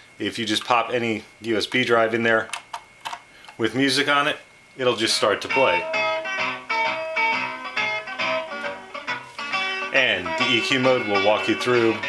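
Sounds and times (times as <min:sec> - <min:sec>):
music with plucked strings: 0:05.4 - 0:12.0.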